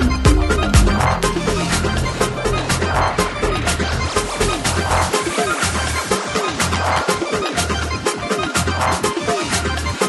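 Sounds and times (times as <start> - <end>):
deep pulsing bass note: 0.0 - 6.1
synth notes sliding down: 0.0 - 7.0.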